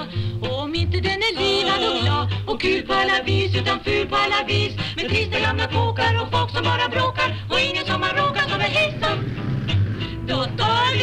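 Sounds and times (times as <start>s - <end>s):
women singing in harmony: 0.8s - 9.3s, 10.2s - 11.0s
band with steady bass line: 3.3s - 11.0s.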